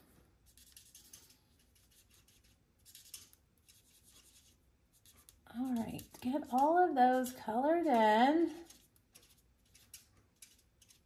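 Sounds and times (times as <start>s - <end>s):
marker scratching on card: 0.4s - 7.4s, 8.6s - 11.0s.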